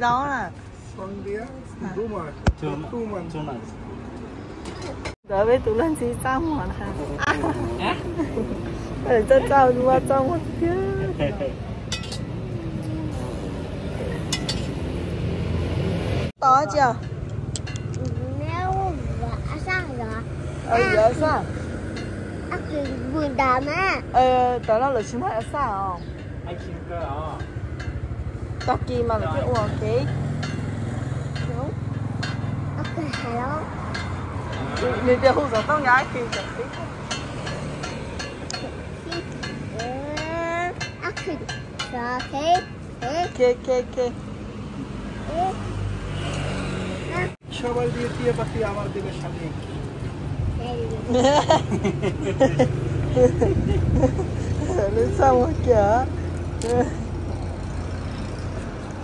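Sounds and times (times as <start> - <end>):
low traffic rumble: 0.0 - 59.0.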